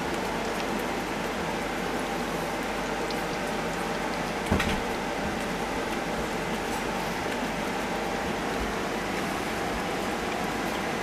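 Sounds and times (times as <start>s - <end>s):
hedgehogs lapping milk: 0.0s - 11.0s.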